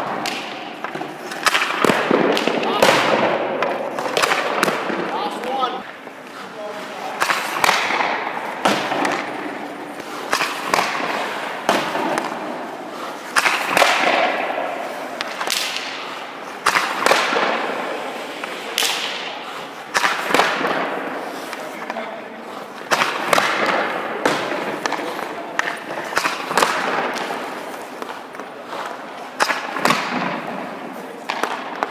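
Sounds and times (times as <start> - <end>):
puck striking goalie pads: 0.0 - 6.3, 7.0 - 31.9
hockey pucks shot with stick: 0.0 - 6.4, 7.0 - 31.9.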